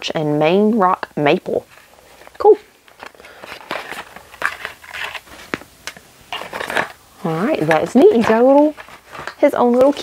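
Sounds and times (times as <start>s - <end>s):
toy packaging rustling: 1.6s - 10.0s.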